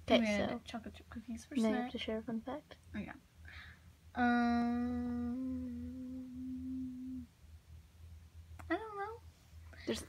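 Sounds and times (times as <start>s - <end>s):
person humming: 4.2s - 7.3s.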